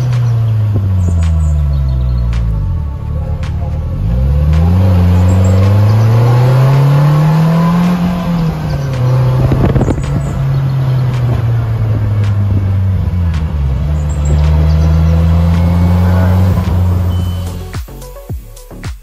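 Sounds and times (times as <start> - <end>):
rough buffeting: 0.0 - 18.0
vehicle engine accelerating: 0.0 - 18.3.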